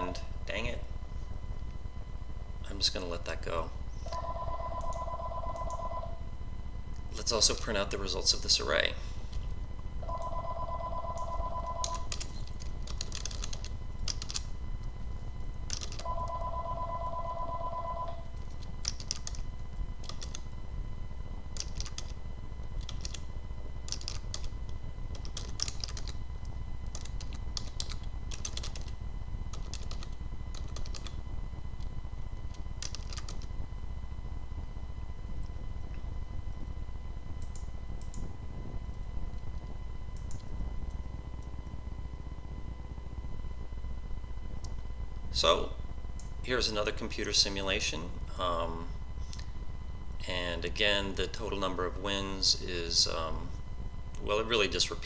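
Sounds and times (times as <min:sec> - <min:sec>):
steady low hum: 0:00.0 - 0:55.0
computer keyboard typing: 0:04.1 - 0:06.0, 0:10.0 - 0:14.5, 0:15.6 - 0:19.4, 0:20.0 - 0:20.5, 0:21.6 - 0:22.2, 0:22.8 - 0:23.3, 0:23.9 - 0:26.2, 0:26.8 - 0:31.2, 0:32.8 - 0:33.5
electronic telephone ringer trilling: 0:04.1 - 0:06.2, 0:10.0 - 0:12.1, 0:16.0 - 0:18.3.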